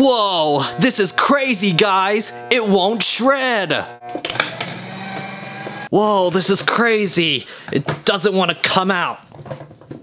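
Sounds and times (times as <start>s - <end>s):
paper shredder motor humming: 4.0s - 5.9s
shredder clicks: 4.2s - 5.9s.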